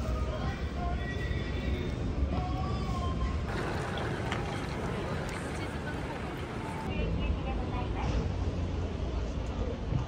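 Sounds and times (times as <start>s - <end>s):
street noise with crowd chatter: 0.0s - 10.0s
faint distant voices: 2.4s - 10.0s.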